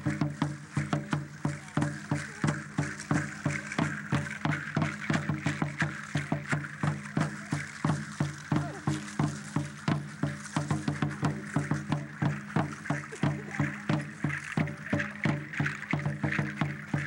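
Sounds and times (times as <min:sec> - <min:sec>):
drum beaten steadily: 0:00.0 - 0:17.0
steady high hiss: 0:00.0 - 0:17.0.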